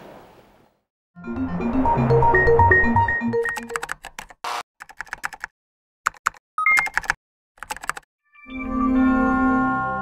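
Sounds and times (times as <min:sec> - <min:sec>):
typing-like clicks: 0:03.4 - 0:05.5, 0:06.1 - 0:08.1.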